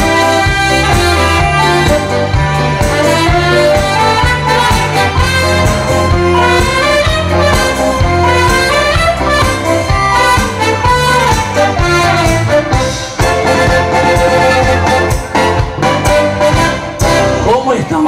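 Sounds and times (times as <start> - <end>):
pulsing bass line: 0.0 - 17.8
dance band with brass and saxophone: 0.0 - 18.0.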